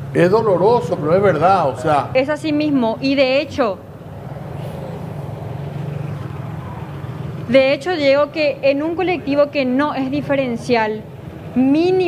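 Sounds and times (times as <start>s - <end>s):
motorcycle passing: 0.0s - 12.0s
street traffic: 0.0s - 12.0s.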